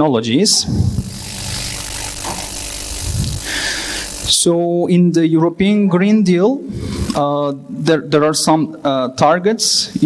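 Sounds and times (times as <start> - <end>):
low hum: 0.6 - 4.5
steady hiss: 0.6 - 4.6.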